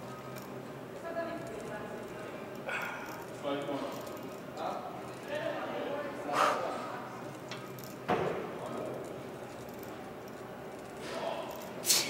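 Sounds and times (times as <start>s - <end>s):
man breathing hard and grunting: 2.7s - 3.2s.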